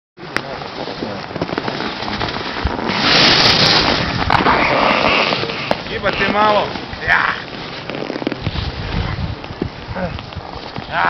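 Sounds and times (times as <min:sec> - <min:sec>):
skis scraping on hard snow: 0:00.2 - 0:11.0.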